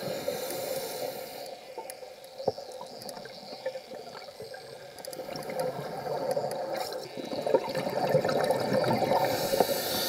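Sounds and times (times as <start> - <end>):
underwater bubbling and gurgling: 0.0 - 10.0.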